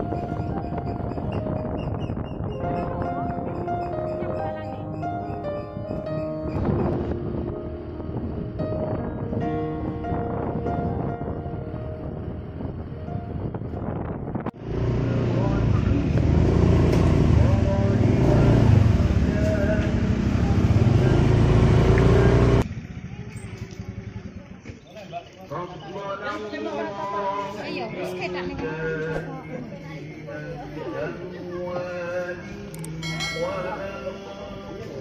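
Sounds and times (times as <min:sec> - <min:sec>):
wind on microphone: 0:00.0 - 0:16.8
motorcycle engine rumble: 0:00.0 - 0:26.2
outdoor ambience: 0:00.0 - 0:35.0
melodic background music: 0:02.4 - 0:13.5.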